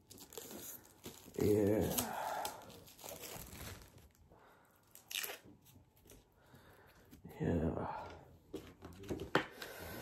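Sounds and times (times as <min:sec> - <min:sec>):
plastic wrapping crinkling and tearing: 0:00.0 - 0:06.3.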